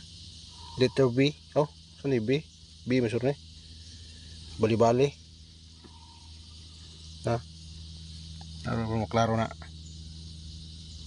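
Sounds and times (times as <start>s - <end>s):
insects chirring: 0.0s - 11.0s
low steady hum: 0.0s - 11.0s.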